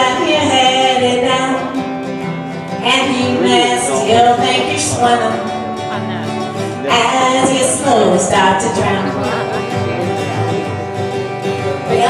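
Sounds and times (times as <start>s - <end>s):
woman singing: 0.0s - 1.9s, 2.8s - 6.3s, 6.9s - 9.7s
strummed acoustic guitar: 0.0s - 12.0s.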